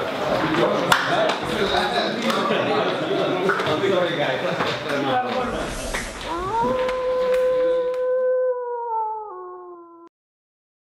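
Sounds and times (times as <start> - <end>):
background noise: 0.0 - 10.0
wolf howl: 6.2 - 10.1.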